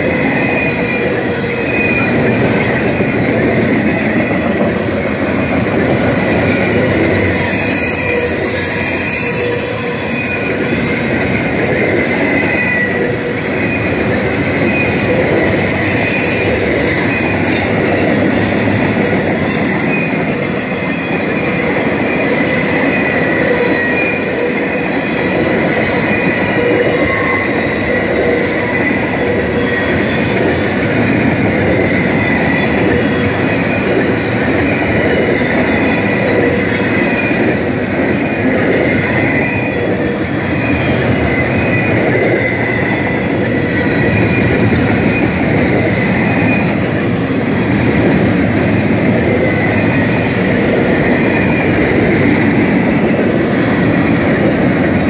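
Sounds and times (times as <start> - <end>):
freight train wheels squealing: 0.0 - 55.0
train rumble and clack on rail: 0.0 - 55.0.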